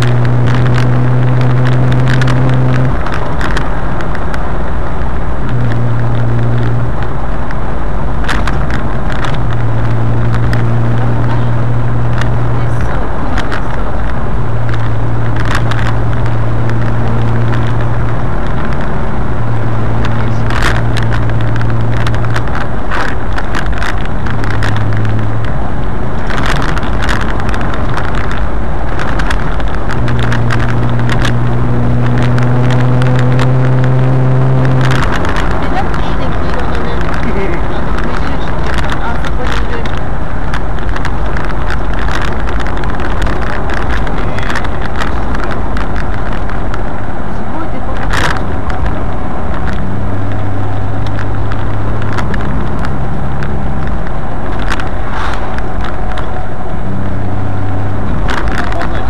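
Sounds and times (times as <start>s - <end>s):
car engine and road noise: 0.0s - 59.0s
low drone: 46.5s - 59.0s.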